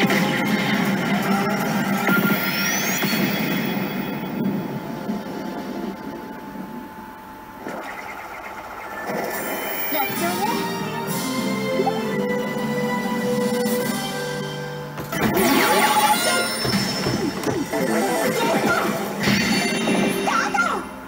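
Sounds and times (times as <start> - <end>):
game machine music: 8.8 - 21.0
character voice lines: 17.7 - 21.0.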